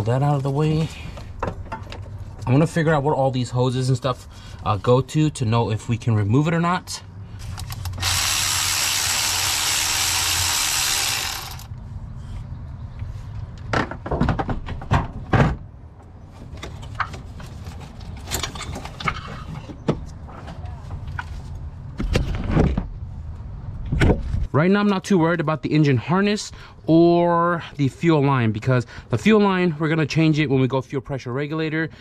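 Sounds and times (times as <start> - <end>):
power drill running: 7.9 - 11.7.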